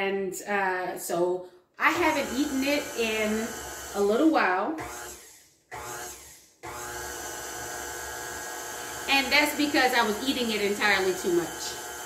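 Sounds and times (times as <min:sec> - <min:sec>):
electric stand mixer motor: 0:01.9 - 0:12.0.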